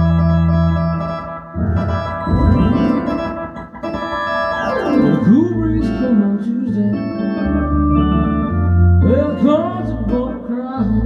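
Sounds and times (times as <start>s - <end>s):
ballpark organ chords: 0.0s - 11.0s
steady bass notes: 0.0s - 11.0s.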